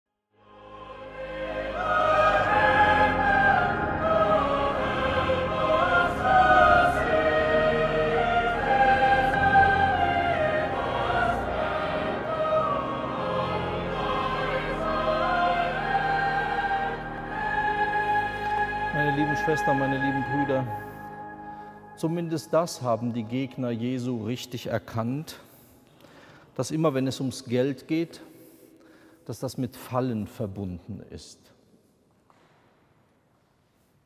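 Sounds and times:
choir singing: 0:00.4 - 0:24.4.

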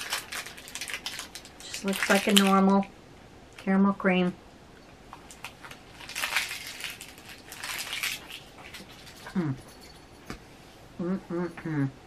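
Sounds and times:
chewing sticky candy: 0:00.0 - 0:02.8.

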